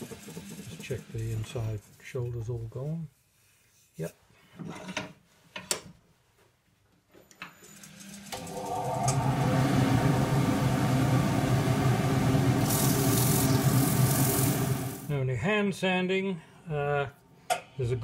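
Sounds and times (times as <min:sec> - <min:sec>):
wood lathe motor humming: 0:00.0 - 0:01.5, 0:08.3 - 0:15.1.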